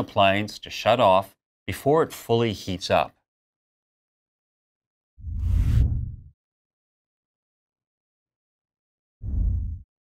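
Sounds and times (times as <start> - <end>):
deep rumbling whoosh: 5.2 - 6.3, 9.2 - 9.9.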